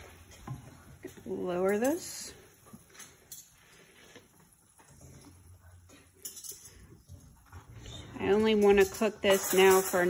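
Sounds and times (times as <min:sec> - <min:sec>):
spatula scraping metal skillet: 0:07.8 - 0:10.0.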